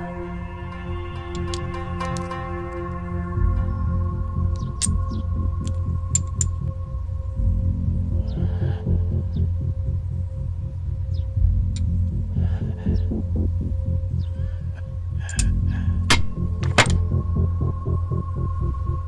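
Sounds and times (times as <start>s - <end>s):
suspense score with pulsing drone: 0.0s - 19.0s
sharp clicks: 1.2s - 2.4s, 4.5s - 6.7s.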